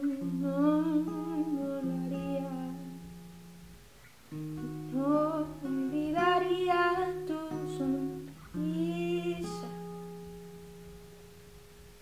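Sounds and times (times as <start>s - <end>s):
acoustic guitar chord ringing: 0.0s - 11.9s.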